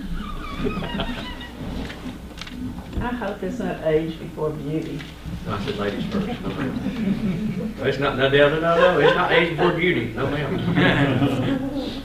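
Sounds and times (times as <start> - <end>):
light laughter: 0.5 - 1.5.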